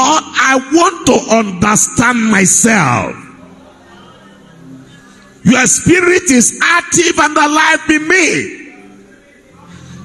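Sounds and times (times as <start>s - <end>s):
man praying into microphone: 0.0s - 3.4s, 5.4s - 8.8s
congregation repeating in unison: 5.4s - 10.0s.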